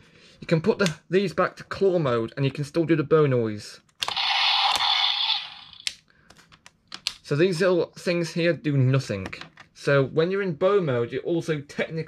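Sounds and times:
sharp plastic clicks: 5.7s - 7.2s.

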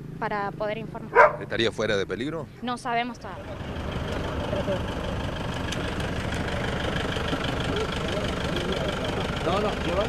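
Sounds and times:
people talking: 0.2s - 3.6s, 7.7s - 10.0s
truck engine idling: 2.9s - 10.0s.

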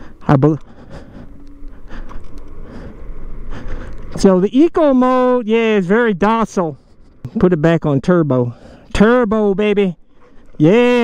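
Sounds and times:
electric scooter wind and road noise: 0.0s - 7.8s.

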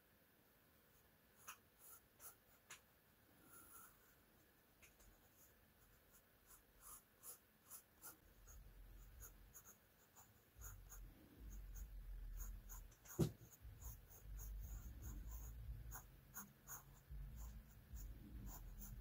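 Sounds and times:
pencil scratching on paper: 0.9s - 2.8s, 3.4s - 4.2s, 4.9s - 19.0s.

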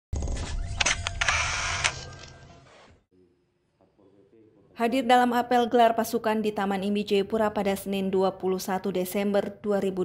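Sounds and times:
camera shutter clicks: 0.8s - 2.4s.

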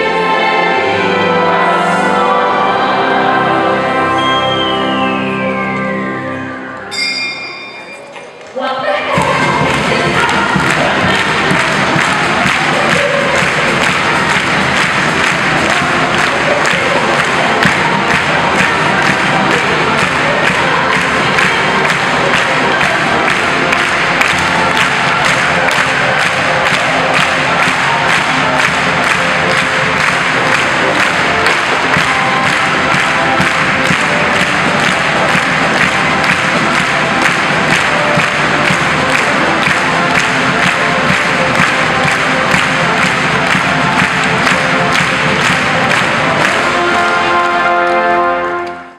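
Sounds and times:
orchestra playing lively piece: 0.0s - 8.5s, 9.1s - 48.9s
audience clapping along: 8.4s - 48.9s.

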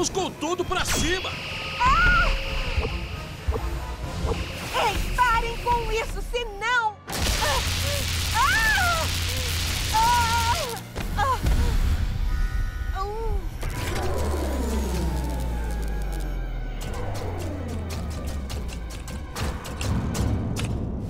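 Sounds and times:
crackling electric buzz: 0.9s - 11.2s, 12.3s - 18.8s
falling power-down whine: 13.6s - 17.9s.

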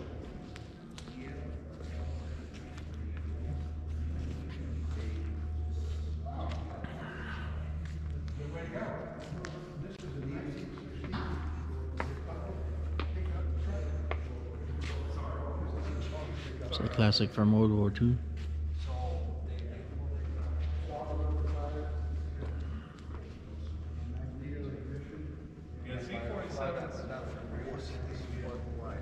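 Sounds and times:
overhead fans humming: 0.0s - 29.0s.

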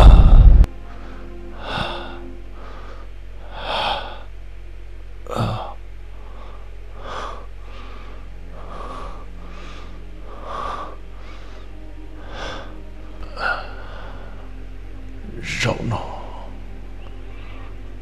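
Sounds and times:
man gasping breaths: 0.0s - 4.3s
steady low hum: 0.0s - 18.0s.

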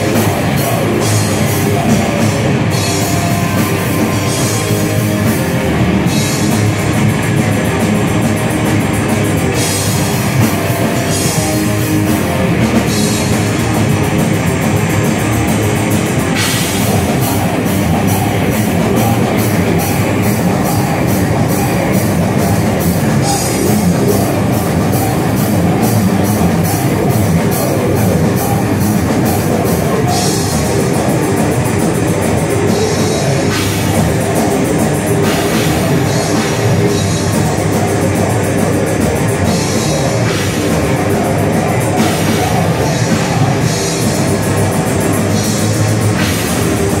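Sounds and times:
distorted guitar: 0.0s - 47.0s
fast drum kit strikes: 0.0s - 47.0s
live metal band playing: 0.0s - 47.0s.

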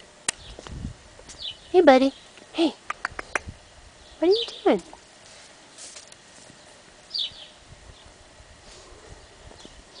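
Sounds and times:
rustling in grass: 5.0s - 10.0s.

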